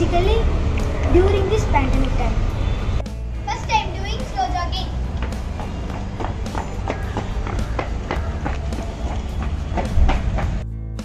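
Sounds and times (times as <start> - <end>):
children's voices: 0.0 - 2.5, 3.5 - 5.0
low background music: 0.0 - 11.0.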